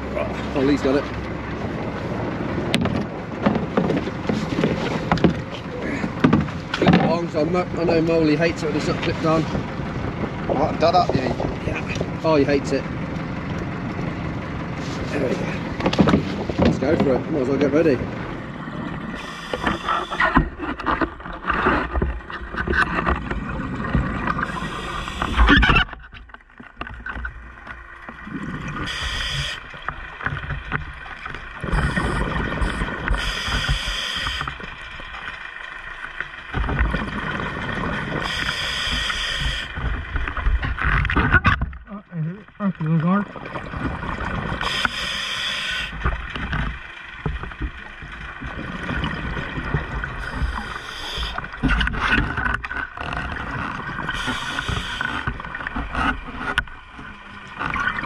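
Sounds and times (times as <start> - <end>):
distant metal clanging underwater: 0.0 - 58.0
diver breathing through regulator: 19.1 - 20.6, 24.4 - 25.5, 28.8 - 29.6, 31.7 - 34.6, 38.2 - 39.8, 44.6 - 46.0, 50.2 - 51.6, 54.0 - 55.3
exhaled bubbles: 22.2 - 25.9, 27.4 - 46.8, 47.5 - 58.0.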